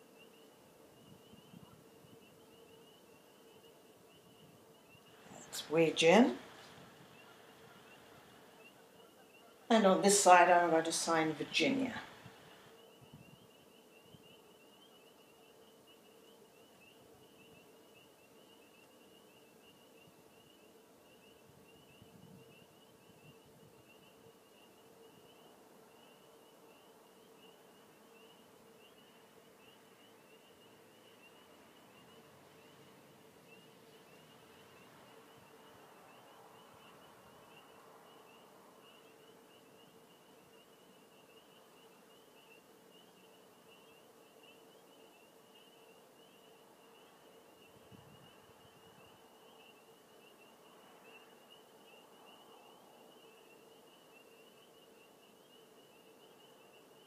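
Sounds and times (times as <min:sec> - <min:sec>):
faint wavering high whine: 0:00.0 - 0:57.0.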